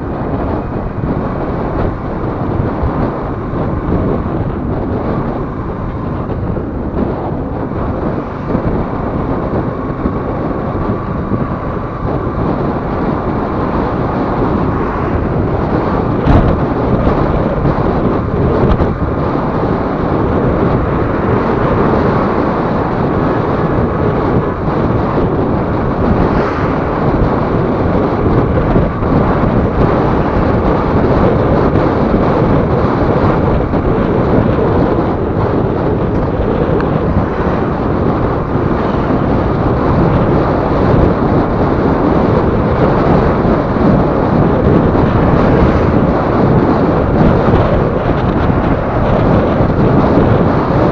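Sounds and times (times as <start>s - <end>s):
motorcycle engine running: 0.0s - 50.9s
road noise: 0.0s - 50.9s
wind buffeting microphone: 0.0s - 50.9s.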